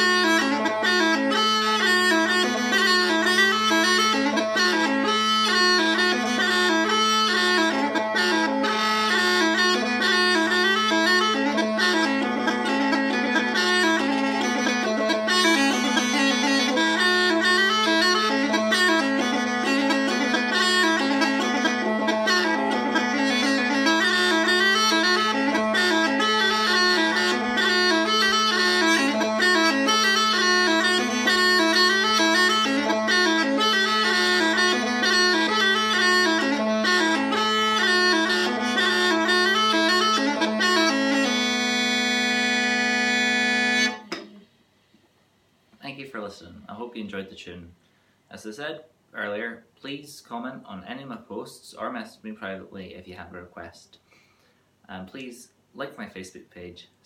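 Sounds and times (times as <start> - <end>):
bagpipe drone: 0.0 - 44.4
bagpipe chanter jig melody: 0.0 - 44.5.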